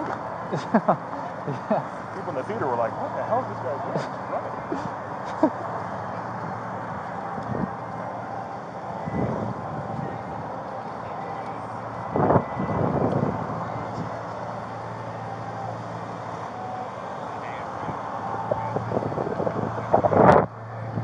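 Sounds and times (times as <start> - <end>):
hum of road traffic: 0.0 - 21.0.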